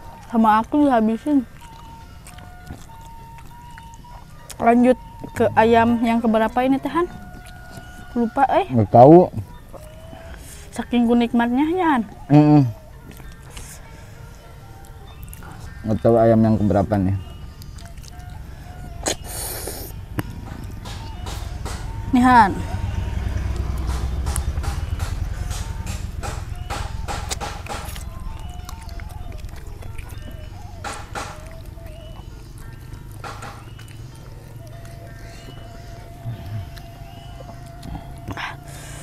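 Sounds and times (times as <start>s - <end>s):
chewing and crunching: 0.0s - 39.0s
low rumble: 5.2s - 7.3s, 19.9s - 30.7s.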